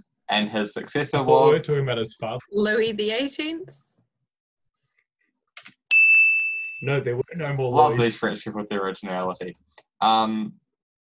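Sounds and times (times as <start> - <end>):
bright bell ding: 5.9 - 7.2.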